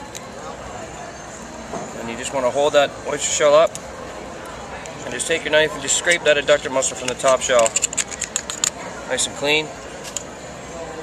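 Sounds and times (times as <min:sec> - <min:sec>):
hall background noise: 0:00.0 - 0:11.0
oyster knife working shell: 0:05.2 - 0:09.4.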